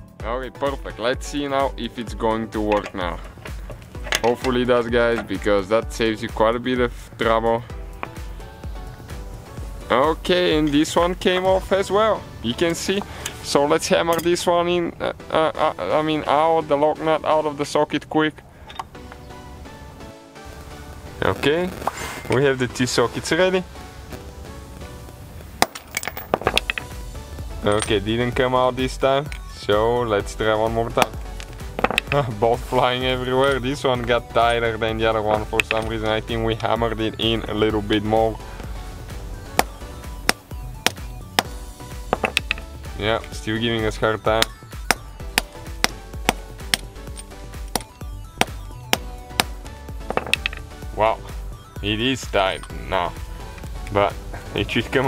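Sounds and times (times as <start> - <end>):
quiet background music: 0.0 - 55.0
hammer striking metal bolt: 2.6 - 5.4, 31.8 - 32.2, 39.5 - 42.7.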